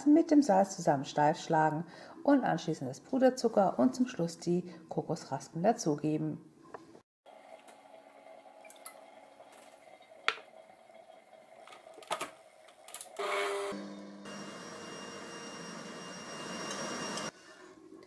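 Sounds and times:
stand mixer whisking: 13.2s - 17.3s.

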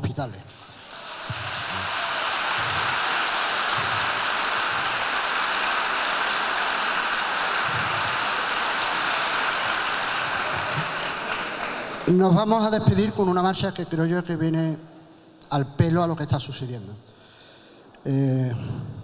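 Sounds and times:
audience applauding: 0.5s - 12.2s.

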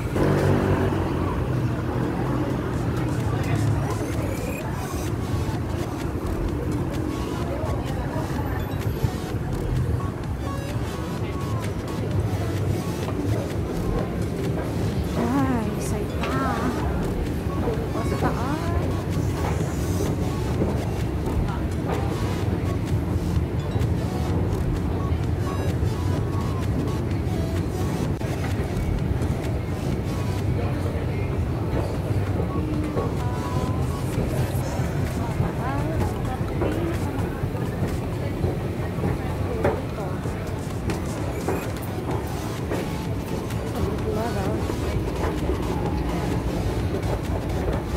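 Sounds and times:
city background noise: 0.0s - 47.9s
people's voices: 0.0s - 47.9s.

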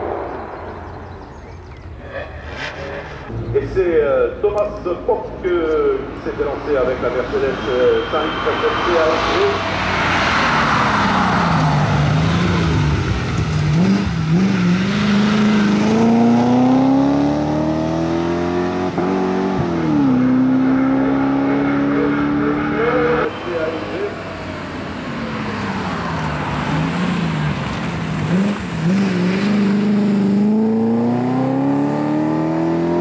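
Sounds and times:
race car engine accelerating: 7.2s - 33.0s.

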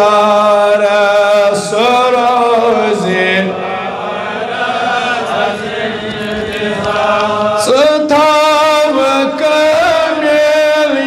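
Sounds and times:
man chanting into a microphone: 0.0s - 3.7s, 6.8s - 11.0s.

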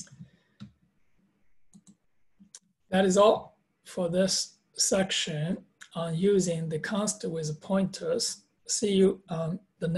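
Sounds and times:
computer mouse clicking: 1.6s - 2.8s.

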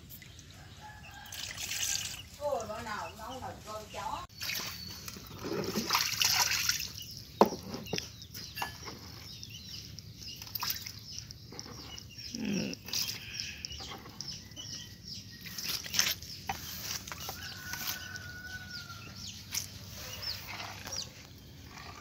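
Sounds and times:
water pouring into plastic tub: 1.3s - 2.3s
water sloshing and splashing: 4.2s - 12.2s, 15.3s - 18.2s, 19.4s - 22.0s.

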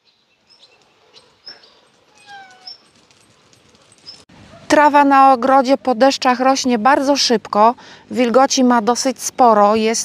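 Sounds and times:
animal whining: 1.2s - 4.2s.

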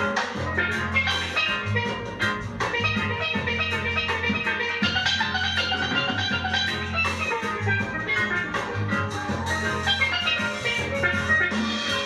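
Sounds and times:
ska band playing: 0.0s - 12.0s
steel pan notes: 0.0s - 12.0s.

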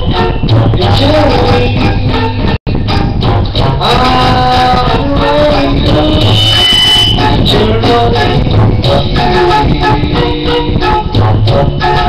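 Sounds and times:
backing track through speakers: 0.0s - 12.0s
man singing into microphone: 0.1s - 2.5s, 3.6s - 11.2s.

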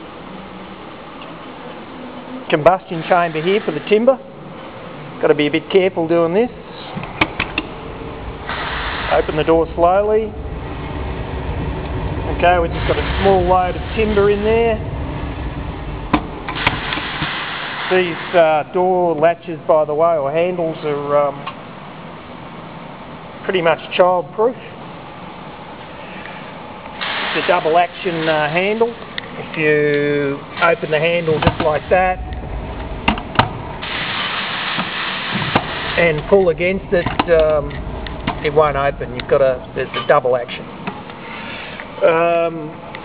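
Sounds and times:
steady hiss: 2.5s - 4.2s, 8.4s - 10.4s, 12.2s - 14.9s, 16.4s - 19.1s, 26.0s - 32.4s, 33.1s - 42.8s
boiler fire rushing: 7.0s - 18.4s, 31.2s - 39.8s.

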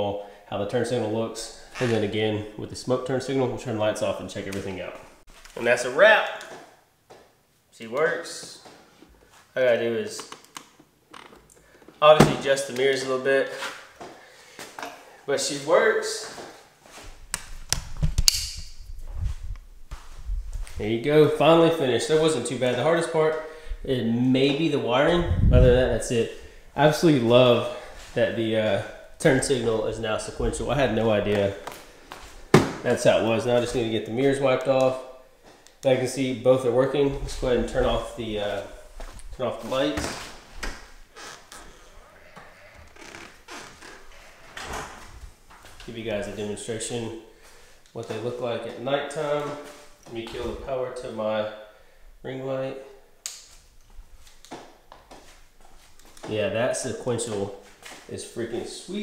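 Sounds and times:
sharp clicks: 53.2s - 53.6s.

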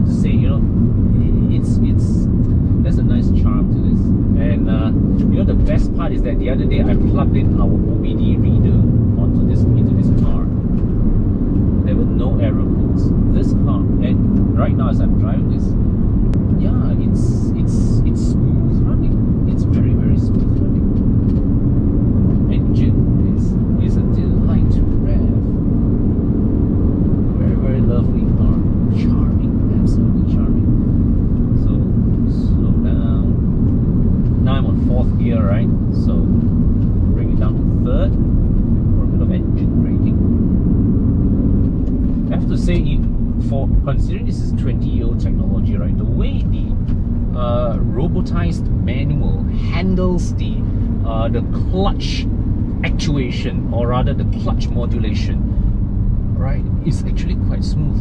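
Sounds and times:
car engine drone: 0.0s - 58.0s
road noise: 0.0s - 58.0s.

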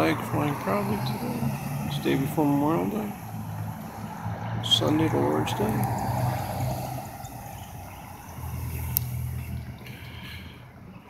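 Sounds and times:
van engine and road rumble: 0.0s - 11.0s.

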